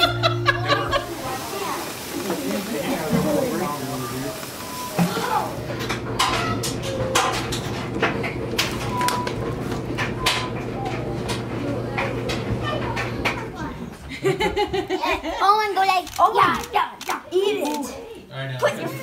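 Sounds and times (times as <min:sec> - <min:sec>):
indistinct voices: 0:00.0 - 0:09.3.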